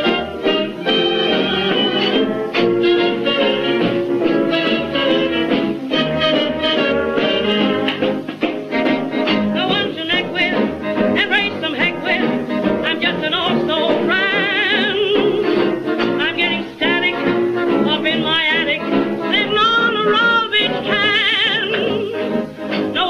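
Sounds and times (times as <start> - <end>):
old swing dance band recording: 0.0 - 23.0
vibrato melody line: 0.0 - 23.0.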